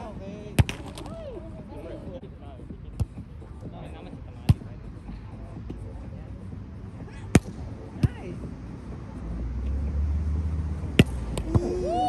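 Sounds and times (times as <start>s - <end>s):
players' voices: 0.0s - 9.4s
volleyball struck by hand: 10.9s - 11.6s.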